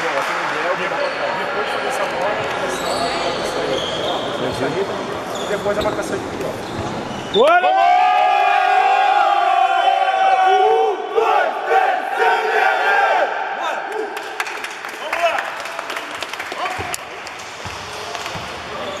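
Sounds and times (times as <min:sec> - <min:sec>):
crowd chatter in a gym: 0:00.0 - 0:19.0
men shouting together: 0:07.7 - 0:14.2.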